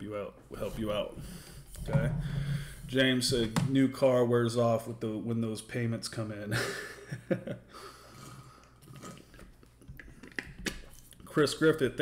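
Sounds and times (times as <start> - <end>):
sipping and swallowing: 8.1 - 11.3.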